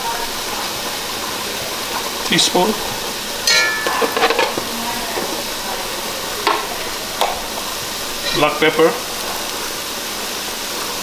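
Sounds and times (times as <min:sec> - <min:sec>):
curry paste sizzling in pot: 0:00.0 - 0:11.0
metal spoon scraping pot: 0:03.4 - 0:05.3.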